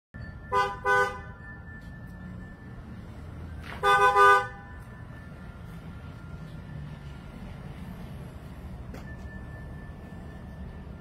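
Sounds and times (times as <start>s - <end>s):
car horn honking: 0.5s - 1.4s, 3.8s - 4.7s.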